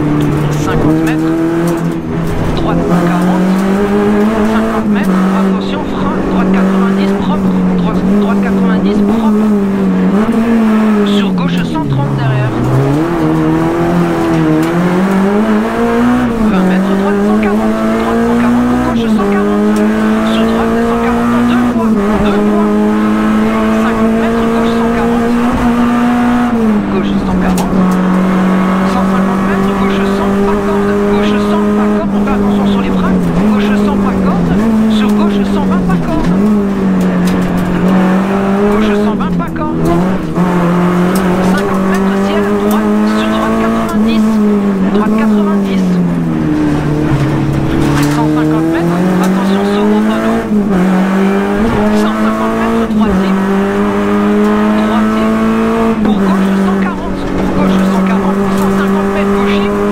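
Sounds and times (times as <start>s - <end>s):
rally car engine at high revs: 0.0s - 59.9s.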